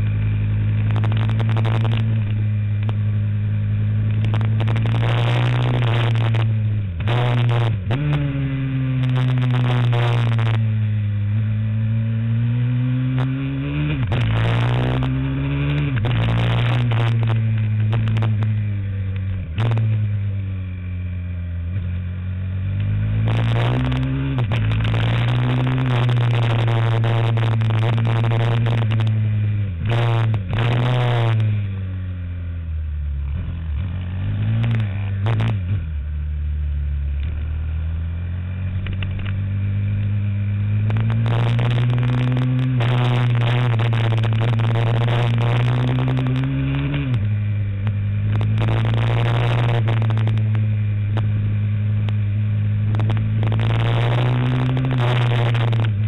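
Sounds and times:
motorcycle engine at high revs: 0.0s - 56.0s.

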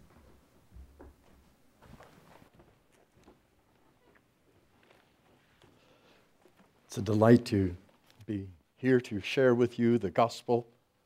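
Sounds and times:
faint soft clicks and rustles: 0.0s - 7.0s, 7.8s - 8.4s.

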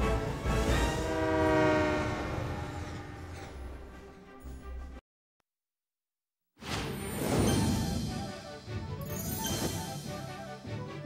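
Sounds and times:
locomotive air horn: 0.0s - 3.9s
train rushing past: 0.0s - 4.3s.

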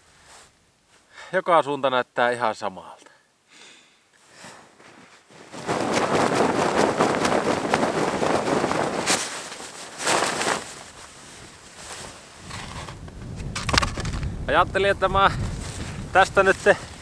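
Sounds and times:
frozen tent fabric rustling: 4.2s - 14.3s, 15.4s - 17.0s.

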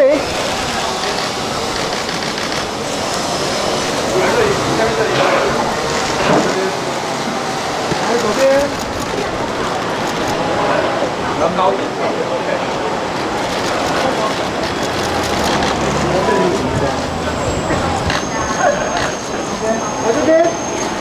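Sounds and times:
crowd chatter: 0.0s - 21.0s
camera shutter bursts: 13.4s - 15.8s.

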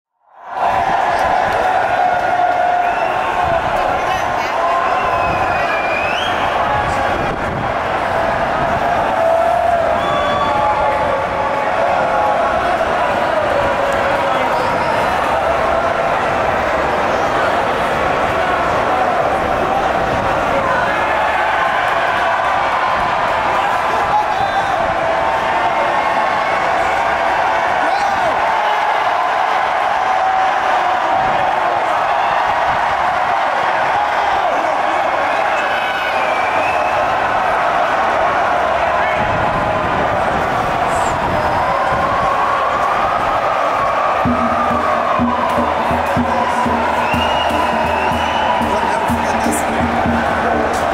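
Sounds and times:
crowd cheering and shouting: 0.2s - 50.9s.

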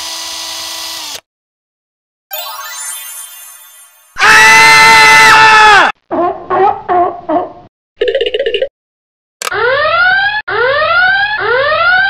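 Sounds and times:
whooping alarm siren: 9.5s - 12.0s.

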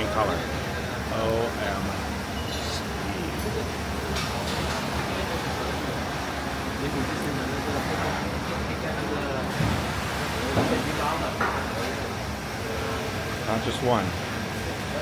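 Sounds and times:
hum of running printers: 0.0s - 15.0s
voices talking: 0.0s - 15.0s.

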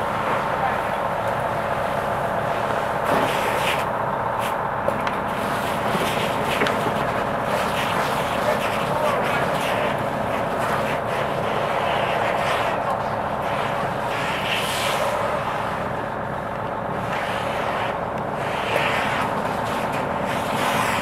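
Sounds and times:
fire engine pump running: 0.0s - 21.0s.

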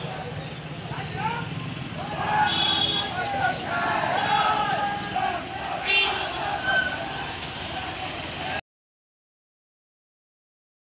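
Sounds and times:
traffic noise: 0.0s - 8.6s.

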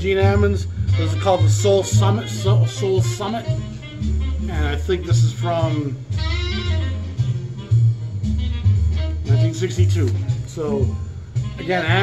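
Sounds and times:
bass notes: 0.0s - 12.0s
saxophone holding a note: 5.6s - 7.1s.

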